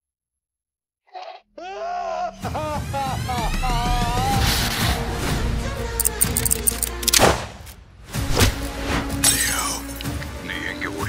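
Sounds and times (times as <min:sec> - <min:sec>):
music with low drone: 0:02.3 - 0:07.3.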